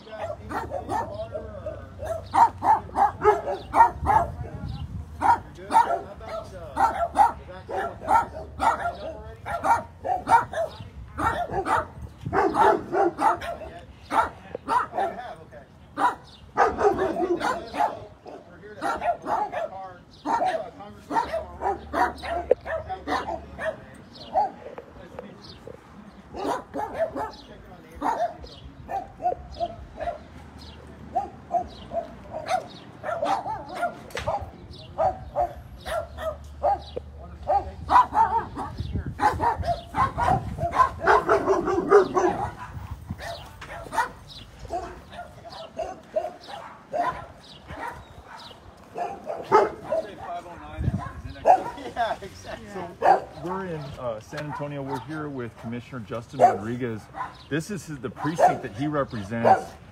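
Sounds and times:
dogs barking: 0:00.0 - 0:52.2, 0:52.8 - 0:59.9.

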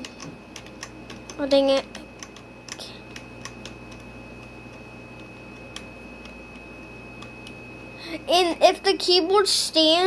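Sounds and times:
keyboard keys clicking: 0:00.0 - 0:07.6
low hum: 0:00.0 - 0:09.4
faint high whine: 0:00.0 - 0:10.0.

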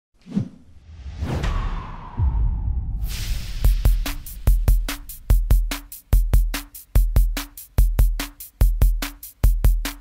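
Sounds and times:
rising whoosh: 0:00.3 - 0:05.2
low rumble: 0:00.8 - 0:05.2.

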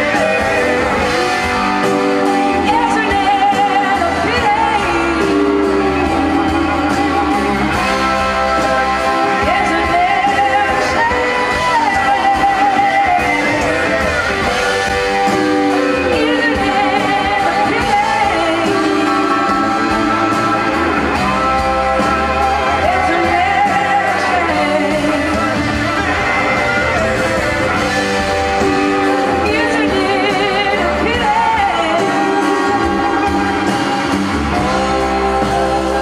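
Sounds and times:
woman singing: 0:00.0 - 0:26.1, 0:28.5 - 0:36.0
drums: 0:00.0 - 0:36.0
electric guitars: 0:00.0 - 0:36.0
live rock band: 0:00.0 - 0:36.0.

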